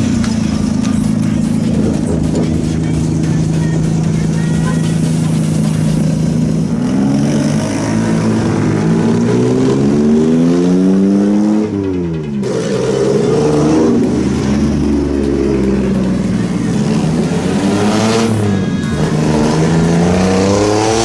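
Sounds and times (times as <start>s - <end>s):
small truck engines passing and revving: 0.0s - 21.0s.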